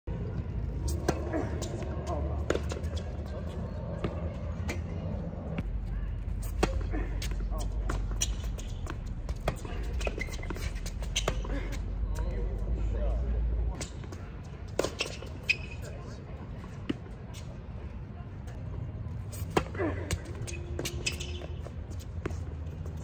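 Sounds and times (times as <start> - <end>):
racket hitting tennis ball: 0.9 - 3.1
tennis ball bouncing on court: 0.9 - 3.3, 6.4 - 11.5, 13.8 - 15.6.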